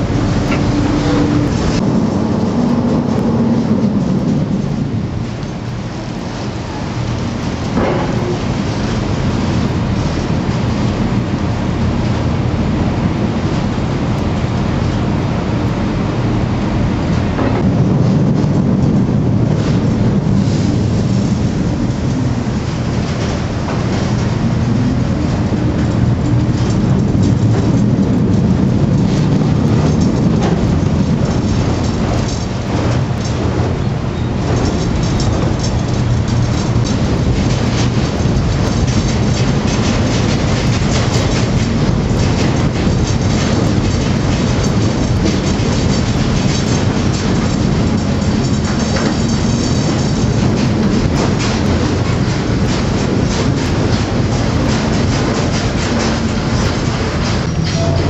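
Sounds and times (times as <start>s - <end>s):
machinery rattling and clattering: 0.0s - 58.0s.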